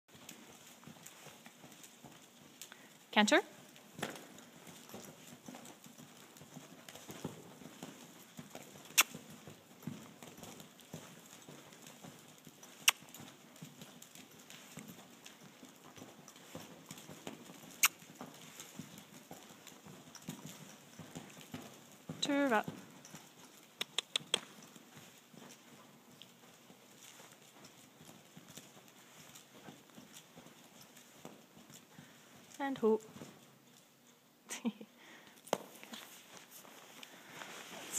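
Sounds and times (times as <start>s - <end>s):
horse hoofbeats on soft dirt: 0.1s - 37.9s
sharp clicks: 9.0s - 9.2s.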